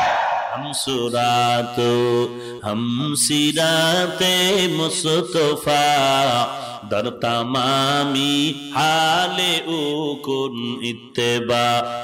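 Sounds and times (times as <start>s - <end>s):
man chanting into microphone: 0.4s - 12.0s.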